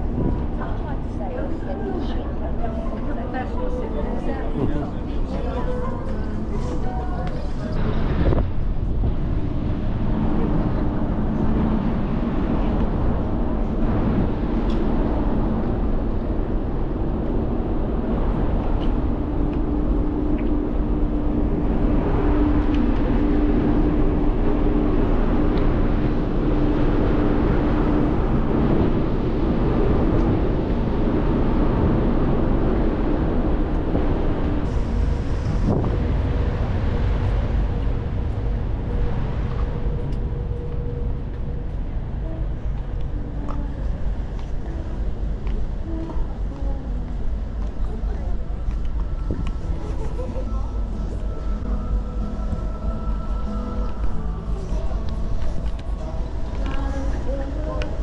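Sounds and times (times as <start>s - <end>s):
ship low rumble: 0.0s - 58.0s
wind blowing over microphone: 0.0s - 58.0s.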